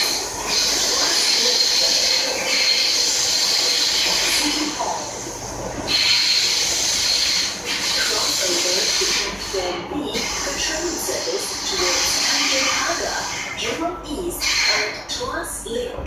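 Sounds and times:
wheel squeal: 0.0s - 4.2s, 5.9s - 9.3s
train rushing through tunnel: 0.0s - 16.0s.

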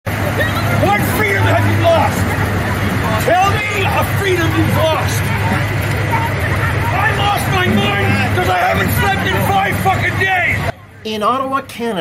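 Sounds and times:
overlapping voices: 0.1s - 10.7s
vehicle engine idling: 0.1s - 10.9s.

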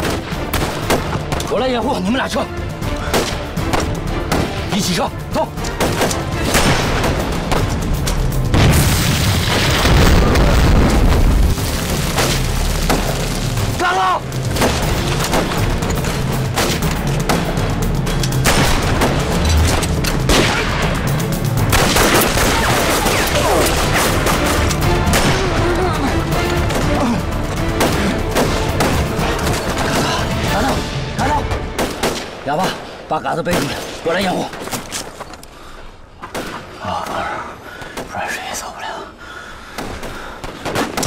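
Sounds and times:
dramatic orchestral music: 0.0s - 35.1s.

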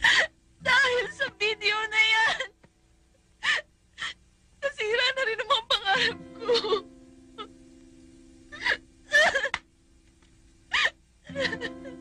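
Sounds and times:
woman crying with gasping sobs: 0.0s - 1.3s, 2.1s - 2.6s, 3.4s - 4.2s, 5.8s - 7.5s, 8.5s - 9.6s, 10.7s - 12.0s.

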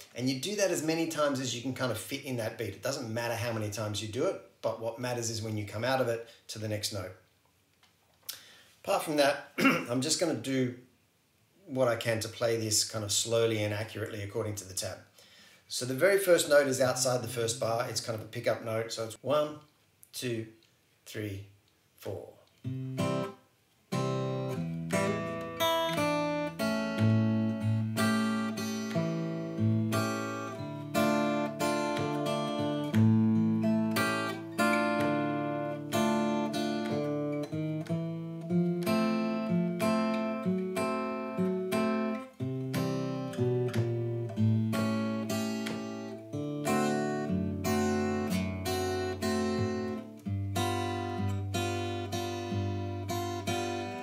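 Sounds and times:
fingerpicked acoustic guitar: 22.6s - 54.0s.

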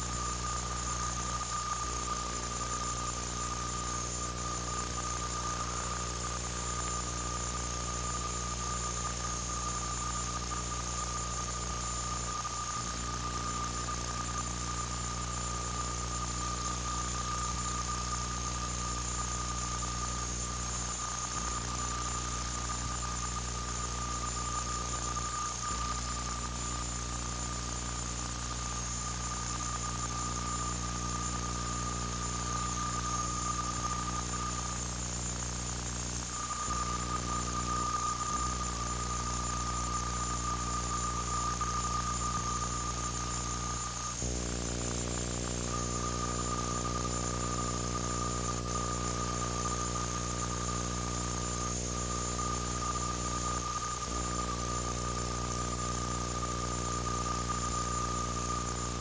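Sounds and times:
electrical hum: 0.0s - 59.0s
high-pitched whine: 0.0s - 59.0s
tape hiss: 0.0s - 59.0s.

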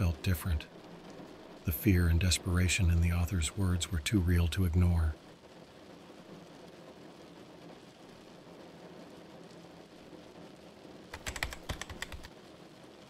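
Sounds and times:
fast keyboard typing: 11.1s - 12.3s.

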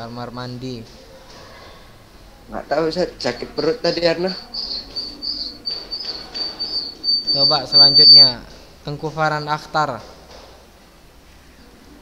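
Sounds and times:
high pulsing chirping: 3.0s - 8.4s.

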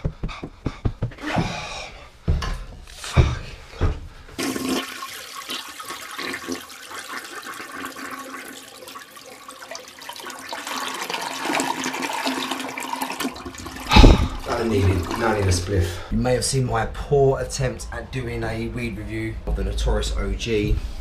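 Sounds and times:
toilet flushing: 4.4s - 16.1s.

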